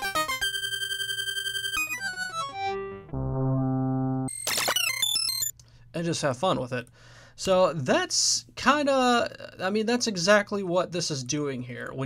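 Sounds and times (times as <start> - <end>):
synthesizer notes: 0.0 - 5.5.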